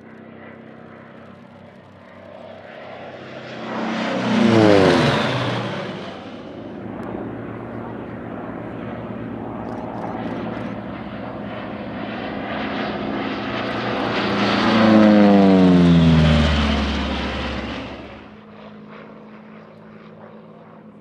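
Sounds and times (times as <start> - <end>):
propeller aircraft flyby: 0.0 - 21.0.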